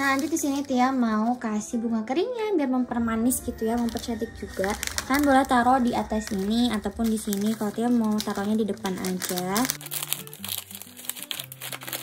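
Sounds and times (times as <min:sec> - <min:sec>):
plastic and paper packaging crinkling: 0:00.0 - 0:01.9, 0:03.3 - 0:12.0
background music with held notes: 0:00.0 - 0:12.0.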